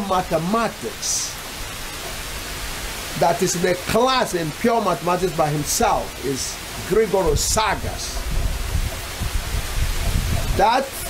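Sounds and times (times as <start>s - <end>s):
steady rain hiss: 0.0s - 11.0s.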